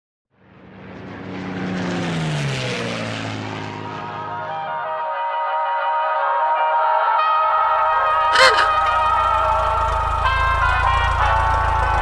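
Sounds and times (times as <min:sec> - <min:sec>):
propeller aircraft engine: 0:00.3 - 0:05.0, 0:07.4 - 0:12.0.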